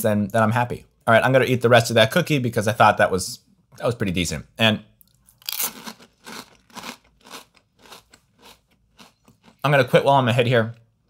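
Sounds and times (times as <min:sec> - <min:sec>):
cookie crunching while chewed: 0:05.3 - 0:09.7.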